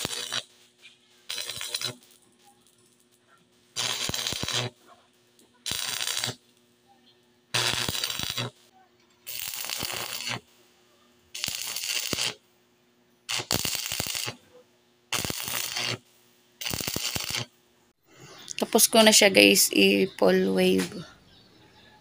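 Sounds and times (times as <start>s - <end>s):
welding arc crackling: 0.0s - 6.8s, 7.5s - 10.7s, 11.3s - 12.4s, 13.3s - 14.5s, 15.1s - 17.6s.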